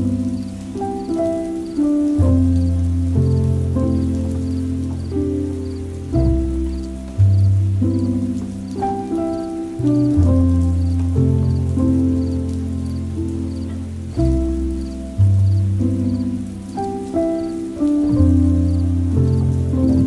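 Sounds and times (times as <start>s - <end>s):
faint rain-like patter: 0.0s - 20.0s
soft piano music: 0.0s - 20.0s.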